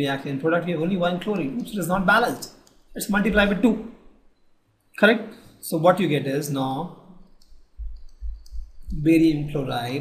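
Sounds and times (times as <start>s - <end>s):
stylus clicking and knocking on tablet: 7.3s - 9.2s.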